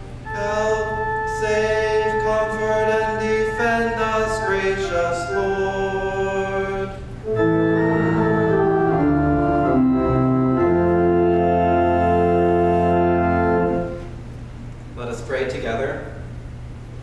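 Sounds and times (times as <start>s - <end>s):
church organ chords: 0.0s - 14.3s.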